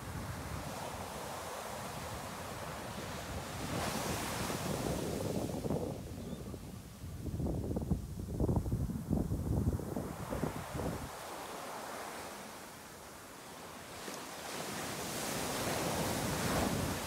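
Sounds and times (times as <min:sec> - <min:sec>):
ocean surf washing: 0:00.0 - 0:07.2, 0:09.7 - 0:17.0
wind buffeting microphone: 0:03.0 - 0:11.2.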